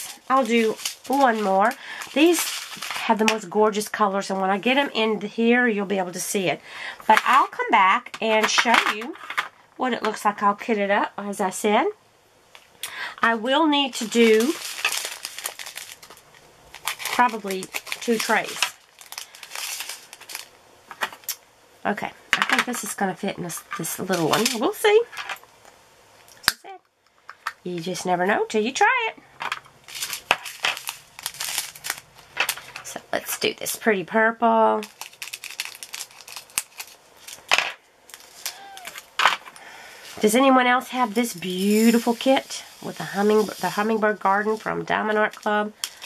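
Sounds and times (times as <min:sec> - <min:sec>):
plastic bag crinkling: 0:00.0 - 0:04.8, 0:13.7 - 0:21.4, 0:23.7 - 0:24.7, 0:29.5 - 0:33.0, 0:34.6 - 0:46.0
plastic rustling: 0:00.0 - 0:05.0, 0:12.5 - 0:21.4, 0:22.5 - 0:25.4, 0:29.4 - 0:33.5, 0:34.6 - 0:46.0.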